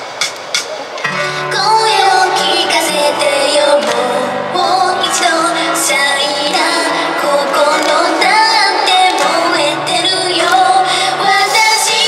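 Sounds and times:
backing music over speakers: 0:00.0 - 0:12.0
person singing into microphone: 0:01.3 - 0:12.0.

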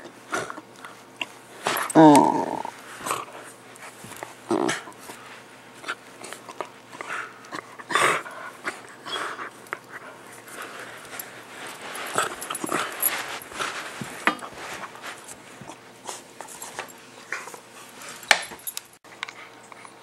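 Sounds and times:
dogs playing and growling: 0:00.0 - 0:20.0.

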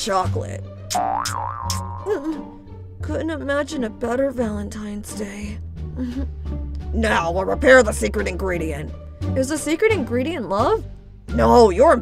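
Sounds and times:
light background music: 0:00.0 - 0:12.0
wobbling cartoon tone: 0:00.9 - 0:02.4.

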